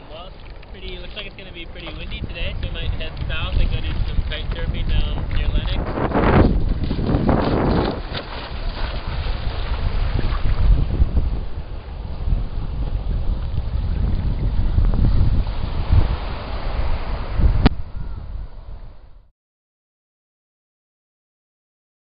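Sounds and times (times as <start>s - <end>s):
wind buffeting microphone: 0.0s - 19.3s.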